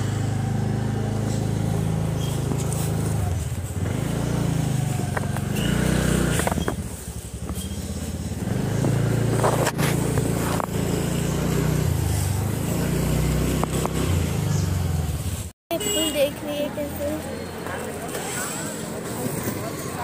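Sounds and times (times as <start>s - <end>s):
motorbike engine running: 0.0s - 18.1s
road noise: 0.0s - 20.0s.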